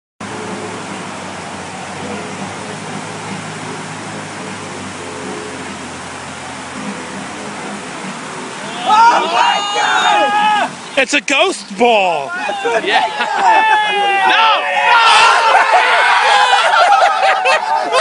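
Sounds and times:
fountain water splashing: 0.2 - 18.0
people shouting: 8.6 - 10.9, 12.2 - 18.0.

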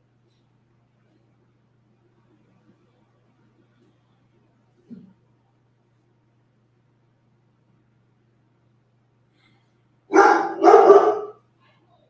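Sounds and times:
dog barking: 10.1 - 11.4.

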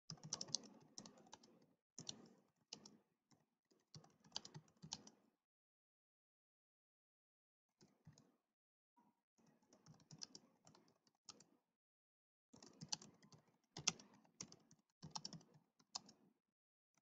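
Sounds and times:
typing on computer keyboard: 0.1 - 3.0, 3.8 - 5.2, 9.7 - 11.5, 12.6 - 16.2.

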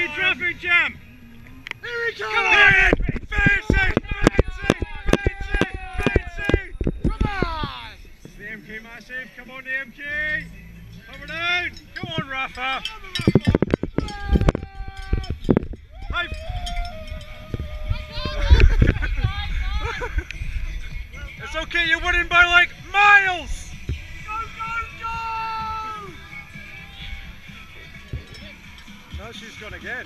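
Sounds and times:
spectators shouting and whooping: 1.8 - 7.6, 14.0 - 19.9, 24.4 - 27.4
cowbells clanging: 2.4 - 30.0.

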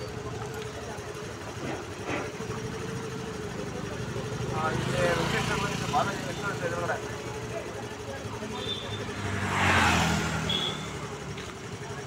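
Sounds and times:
motorbike engine running: 0.0 - 12.0
people's voices: 0.0 - 12.0.

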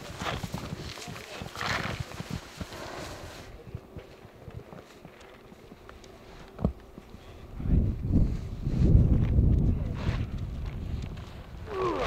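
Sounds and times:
footsteps crunching in snow: 0.0 - 7.4.

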